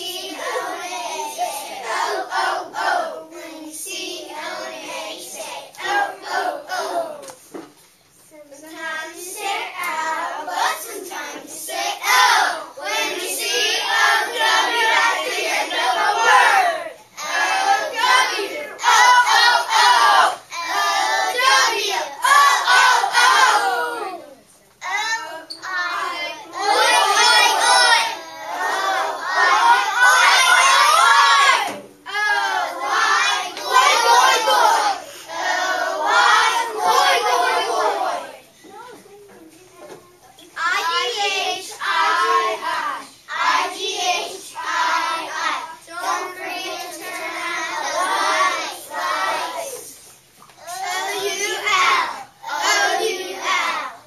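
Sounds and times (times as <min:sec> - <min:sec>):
children chanting in unison: 0:00.0 - 0:07.3, 0:08.6 - 0:38.7, 0:40.6 - 0:50.0, 0:50.6 - 0:54.0.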